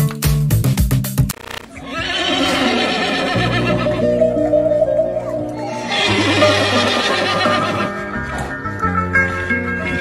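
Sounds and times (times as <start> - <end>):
horse whinnying: 1.8 - 4.0
background music: 3.0 - 10.0.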